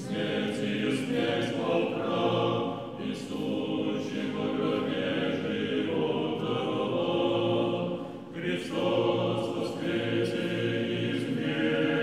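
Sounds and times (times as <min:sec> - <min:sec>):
choir singing chant: 0:00.0 - 0:12.0.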